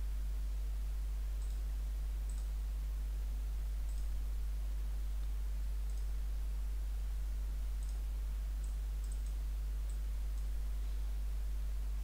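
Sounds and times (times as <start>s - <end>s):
low electrical hum: 0.0s - 12.0s
faint computer mouse clicks: 1.4s - 1.6s, 2.2s - 2.6s, 3.8s - 4.2s, 5.8s - 6.2s, 7.8s - 8.0s, 8.6s - 10.5s.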